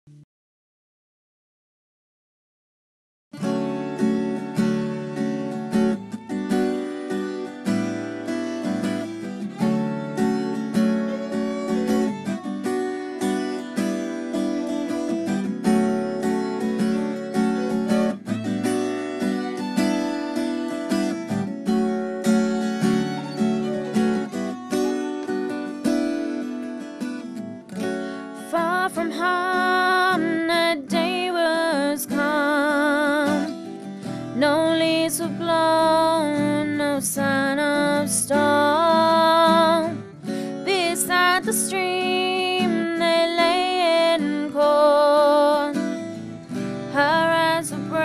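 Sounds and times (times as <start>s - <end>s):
acoustic guitar playing: 3.4s - 48.0s
person singing: 28.4s - 33.6s, 34.3s - 45.9s, 46.9s - 48.0s.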